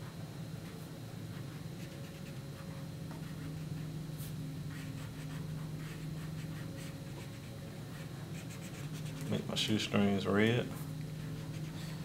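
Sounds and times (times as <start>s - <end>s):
steady low hum: 0.0s - 12.0s
marker rubbing on paper: 8.4s - 9.3s, 11.2s - 11.8s.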